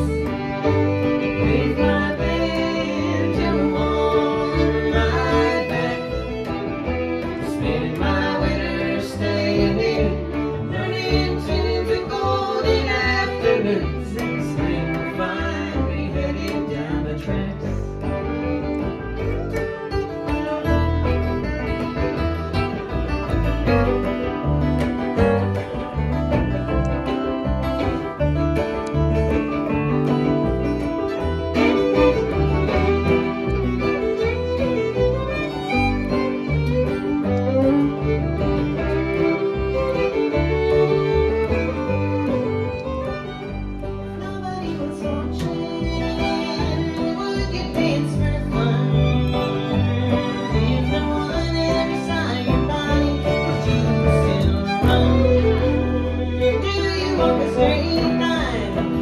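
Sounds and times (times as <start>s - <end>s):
acoustic string band playing: 0.0s - 59.0s
bowed fiddle: 0.0s - 59.0s.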